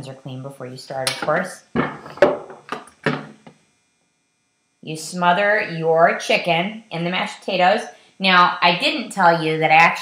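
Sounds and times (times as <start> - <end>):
kitchenware knocking and clattering: 1.1 - 3.4.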